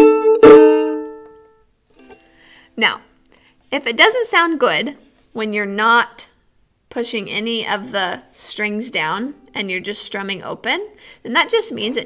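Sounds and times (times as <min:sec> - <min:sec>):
out-of-tune ukulele strums: 0:00.0 - 0:02.2.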